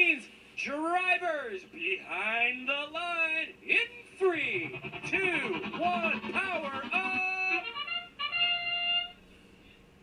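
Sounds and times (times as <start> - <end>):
held musical tone: 4.3 - 8.7.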